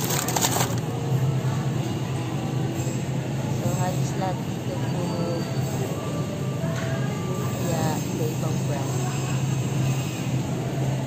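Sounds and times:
refrigerator hum: 0:00.0 - 0:02.6.

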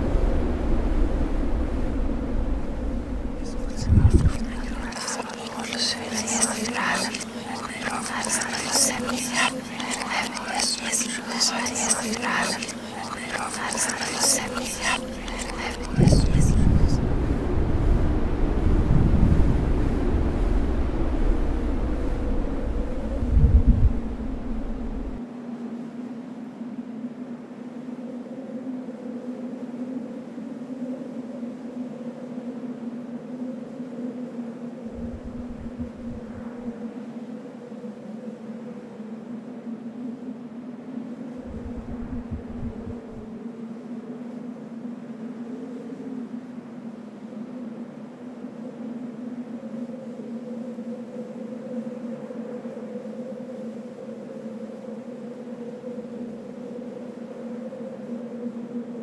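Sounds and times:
deep rumbles: 0:00.0 - 0:05.0, 0:13.5 - 0:25.2, 0:34.9 - 0:36.7, 0:41.4 - 0:43.3
low droning hum: 0:00.0 - 0:25.2, 0:34.8 - 0:37.0, 0:41.4 - 0:43.4.

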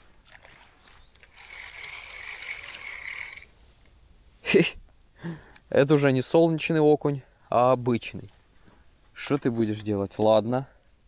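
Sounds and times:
fishing reel whirring: 0:00.3 - 0:03.5.

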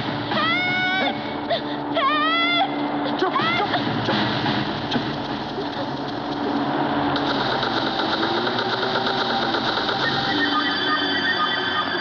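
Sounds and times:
dense noisy background: 0:00.0 - 0:12.0
engine-like mechanical sound: 0:00.0 - 0:12.0
rapid even rattle: 0:04.0 - 0:10.3.

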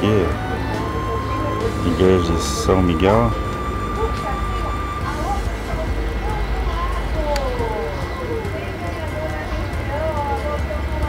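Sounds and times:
faint voices talking: 0:00.0 - 0:11.0
steady low rumble: 0:00.0 - 0:11.0.

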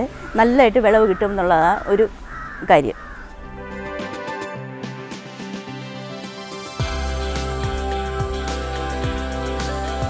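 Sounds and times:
crow cawing: 0:00.1 - 0:03.4
background music: 0:03.2 - 0:10.0.

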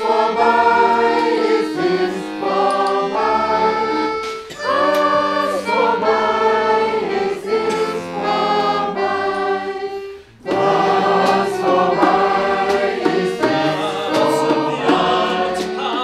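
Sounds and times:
button accordion: 0:00.0 - 0:16.0
people singing: 0:00.0 - 0:16.0.

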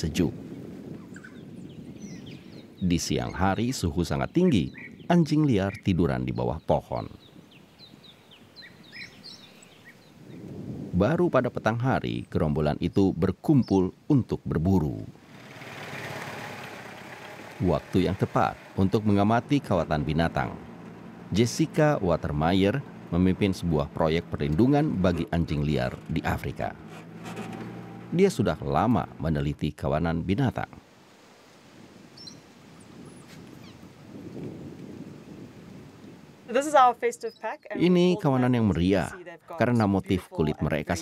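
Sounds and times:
faint outdoor ambience: 0:00.0 - 0:41.0
high chirping calls: 0:07.0 - 0:10.5, 0:32.2 - 0:32.5, 0:36.8 - 0:39.2
vehicle engine and tyre noise: 0:15.2 - 0:29.3.

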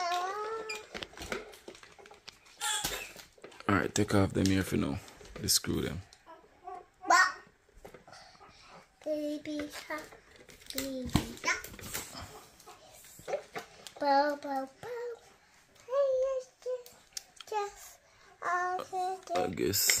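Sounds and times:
toddler babbling: 0:00.0 - 0:00.9, 0:06.3 - 0:07.5, 0:15.9 - 0:16.9, 0:17.5 - 0:19.4.

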